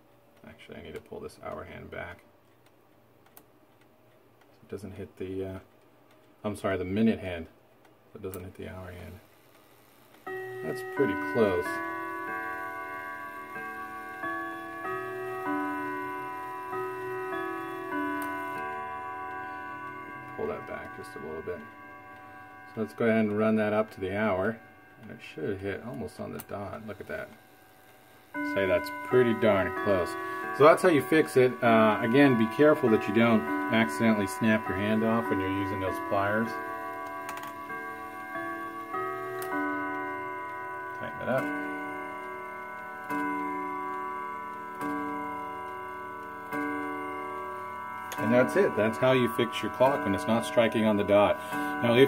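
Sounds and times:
wall clock chime melody: 0:00.0 - 0:02.2, 0:04.7 - 0:07.5, 0:08.2 - 0:52.0.

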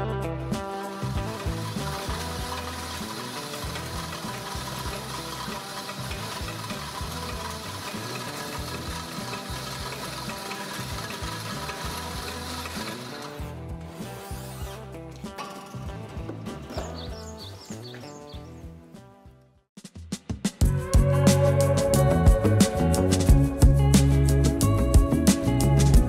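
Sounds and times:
machine whirring and rubbing: 0:00.6 - 0:18.1.

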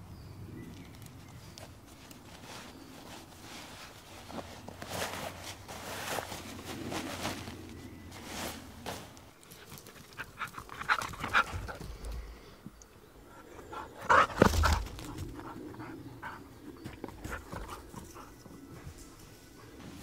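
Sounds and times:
dog panting: 0:09.6 - 0:12.3, 0:13.3 - 0:20.0.

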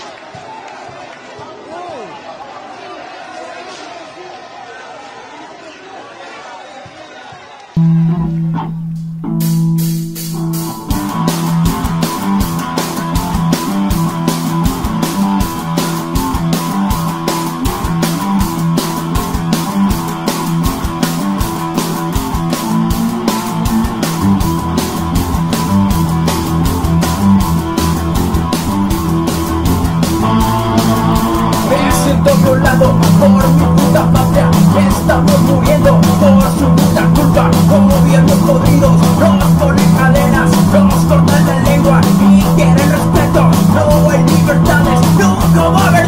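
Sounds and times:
rock guitar chords: 0:07.8 - 0:46.0
fast rock drum beat: 0:08.4 - 0:46.0.

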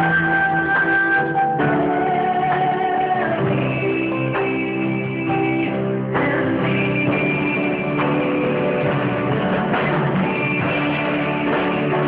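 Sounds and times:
electric guitar: 0:00.0 - 0:12.0
piano chords: 0:00.0 - 0:12.0.

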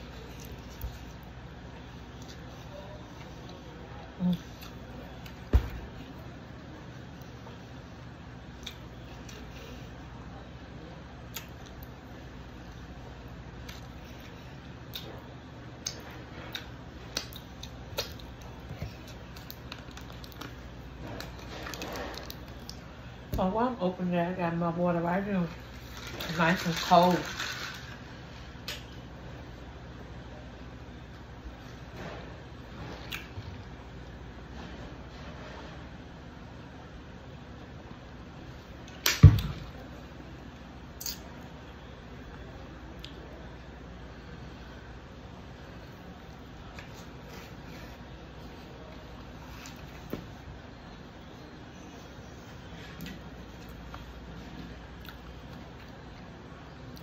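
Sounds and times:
low room hum: 0:00.0 - 0:57.0.

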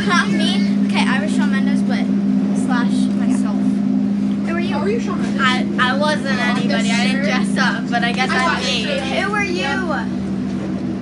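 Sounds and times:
children chattering: 0:00.0 - 0:02.1, 0:04.4 - 0:10.2
bus engine droning: 0:00.0 - 0:11.0.

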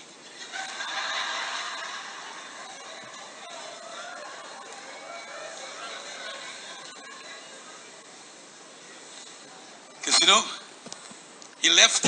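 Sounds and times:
audience murmuring: 0:00.2 - 0:11.3
audience laughter: 0:00.3 - 0:08.0.

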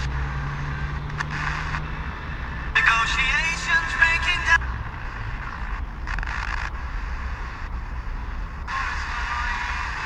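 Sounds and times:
radio broadcast voice: 0:02.6 - 0:04.7, 0:08.4 - 0:10.0
faint radio hiss: 0:07.0 - 0:10.0.

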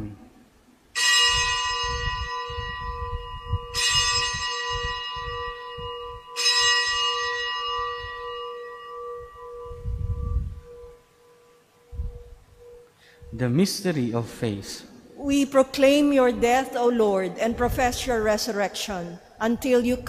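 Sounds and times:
bell ringing: 0:01.0 - 0:11.6.

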